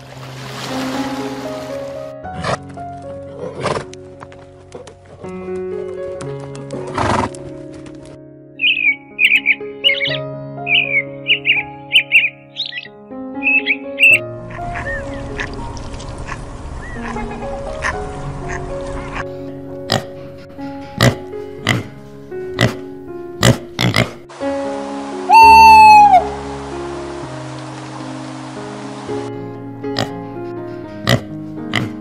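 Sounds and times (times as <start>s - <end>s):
background music: 0.0s - 32.0s
bird chirping: 8.6s - 15.3s.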